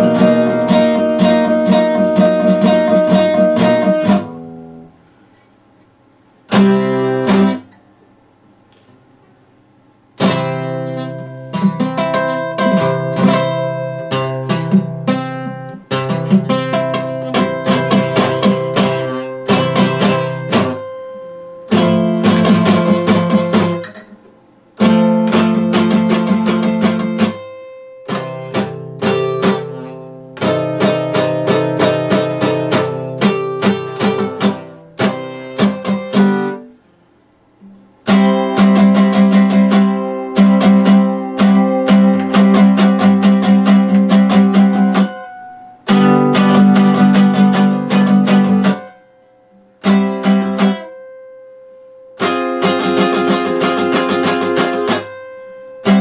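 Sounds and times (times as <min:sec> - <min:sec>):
acoustic guitar strummed chords: 0:00.0 - 0:09.2, 0:09.8 - 0:56.0.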